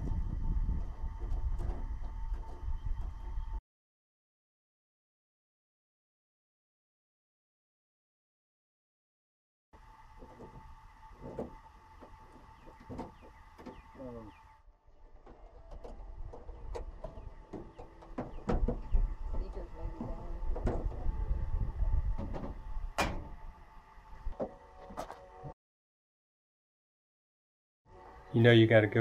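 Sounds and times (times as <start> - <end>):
low rumble: 0.0 - 3.6, 14.9 - 24.4.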